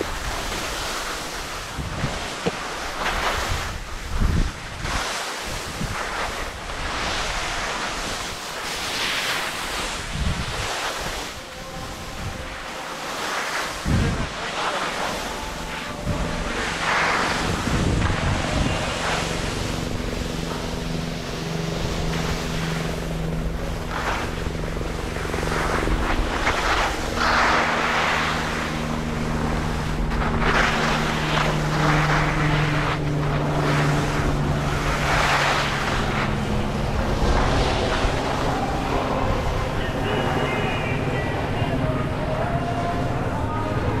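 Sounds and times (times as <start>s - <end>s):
skis scraping on snow: 0.0s - 41.3s
low mechanical hum: 0.0s - 44.0s
wind on microphone: 0.0s - 44.0s.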